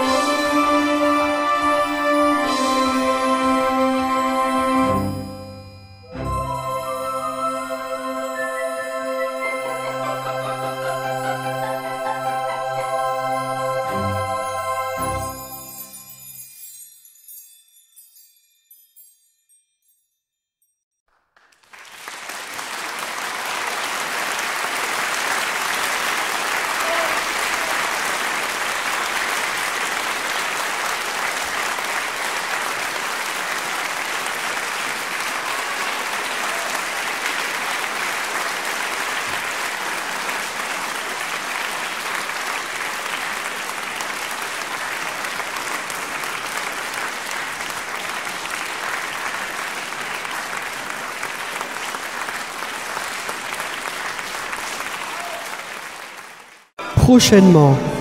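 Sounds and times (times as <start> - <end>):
audience applause: 21.1 - 56.7.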